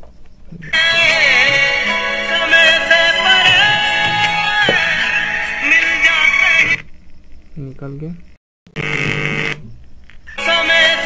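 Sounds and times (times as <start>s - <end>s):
music through a loudspeaker: 0.8s - 6.8s.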